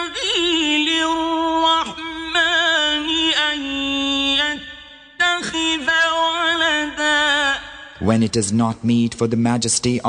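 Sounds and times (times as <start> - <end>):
man chanting melodically: 5.2 - 10.0.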